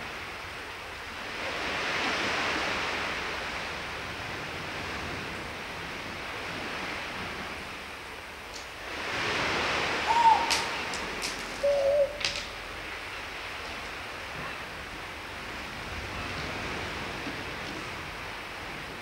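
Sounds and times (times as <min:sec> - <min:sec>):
sea surf rushing: 0:00.0 - 0:19.0.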